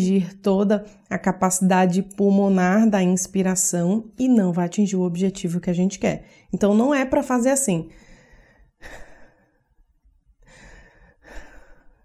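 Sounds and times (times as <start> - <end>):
woman breathing hard: 7.9 - 12.0.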